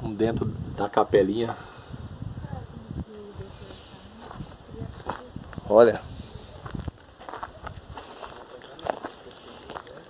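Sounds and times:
footsteps on dirt and grass: 0:03.6 - 0:10.0.

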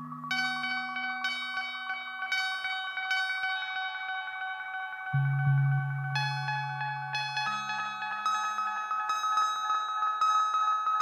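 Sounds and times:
bell-like synthesizer note: 0:00.0 - 0:11.0.

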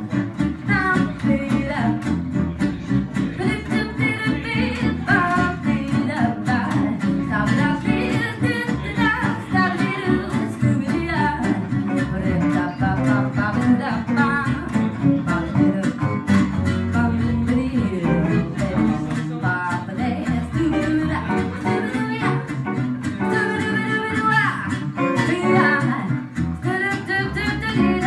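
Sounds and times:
archtop guitar: 0:00.0 - 0:28.0
double bass plucking: 0:00.0 - 0:28.0
rhythm guitar strumming: 0:00.0 - 0:28.0
woman singing jazz: 0:00.0 - 0:28.0.

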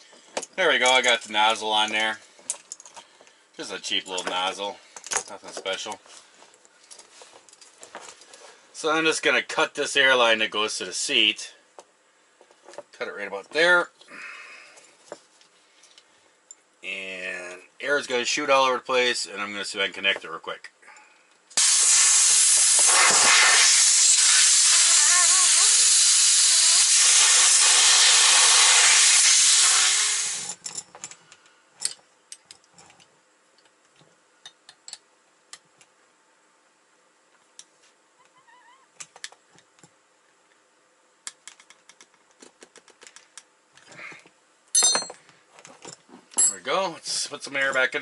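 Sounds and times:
compressed air hissing: 0:21.6 - 0:30.6
clicks of fittings and tools: 0:30.6 - 0:35.6.

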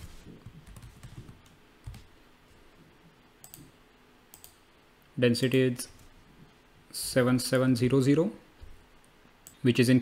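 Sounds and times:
keyboard typing: 0:00.4 - 0:02.1
mouse clicks: 0:03.4 - 0:03.7, 0:04.3 - 0:04.6.

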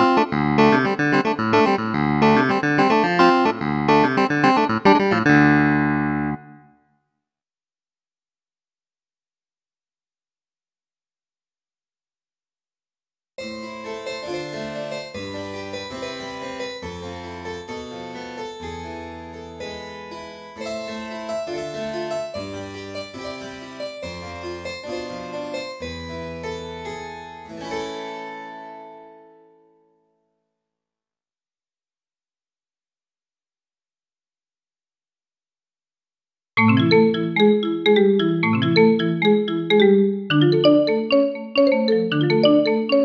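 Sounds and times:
low bass notes: 0:00.0 - 0:06.6
clavinet chord: 0:00.0 - 0:06.7
harpsichord melody: 0:00.0 - 0:06.7, 0:13.4 - 0:29.3, 0:36.6 - 0:43.0.

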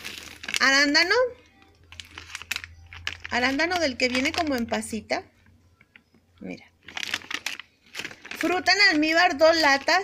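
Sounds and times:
plastic pouch crinkling: 0:00.0 - 0:05.1, 0:06.8 - 0:10.0.

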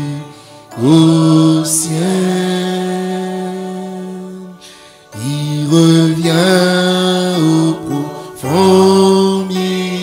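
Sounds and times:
slow hymn singing: 0:00.0 - 0:10.0.

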